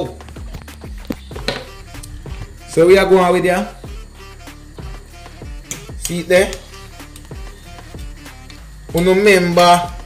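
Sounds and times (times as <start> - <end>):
background music: 0.0 - 10.0
deep drum beat: 0.2 - 9.1.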